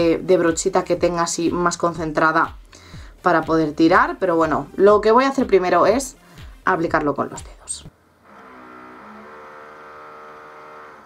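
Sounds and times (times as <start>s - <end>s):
electric drill whining: 8.2s - 11.0s.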